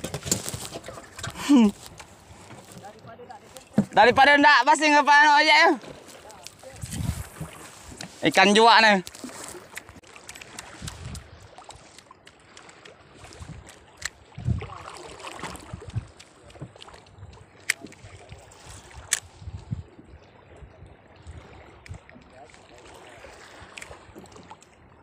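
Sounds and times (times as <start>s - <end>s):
clicks and knocks of rods: 0.0s - 4.2s
low thuds from boat: 0.0s - 4.3s, 6.7s - 8.2s
water lapping against boat hull: 0.0s - 25.0s.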